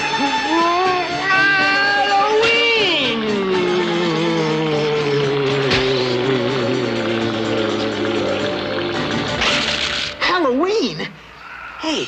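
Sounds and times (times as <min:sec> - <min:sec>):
held chord sinking in pitch: 0:02.8 - 0:09.8.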